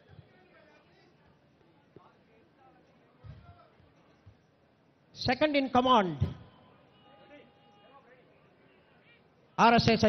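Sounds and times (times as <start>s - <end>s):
faint distant voices: 0.0s - 5.1s, 6.2s - 9.6s
faint steady tones: 0.0s - 9.6s.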